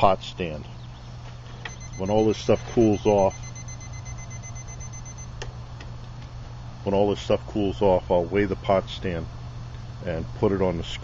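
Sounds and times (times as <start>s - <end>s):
steady low hum: 0.0s - 11.0s
thermometer alarm beeping: 1.7s - 5.3s.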